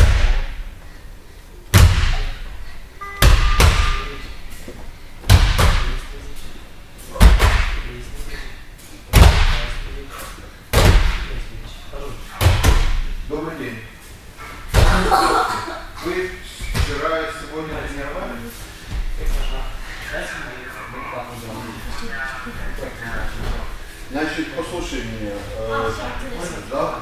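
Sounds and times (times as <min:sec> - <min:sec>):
bodies slapping gym mats: 0:00.0 - 0:00.7, 0:01.7 - 0:02.5, 0:05.2 - 0:06.1, 0:07.2 - 0:07.9, 0:09.1 - 0:09.9, 0:10.7 - 0:11.4, 0:12.4 - 0:13.1, 0:14.6 - 0:15.2
voices: 0:14.8 - 0:27.0.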